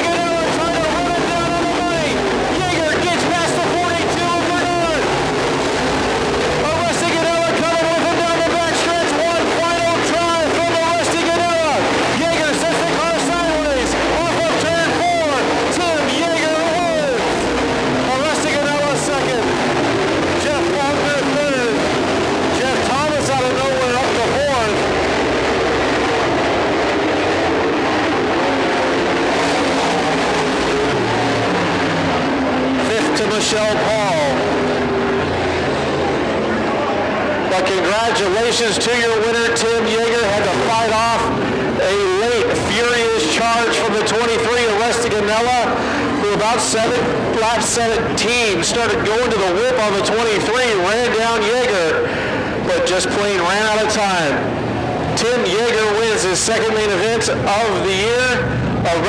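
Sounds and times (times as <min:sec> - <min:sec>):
race car engines passing: 0:00.0 - 0:59.0.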